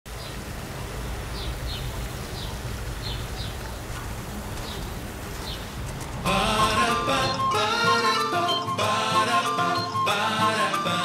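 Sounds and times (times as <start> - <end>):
bird chirping: 1.0 - 3.9, 4.6 - 10.2.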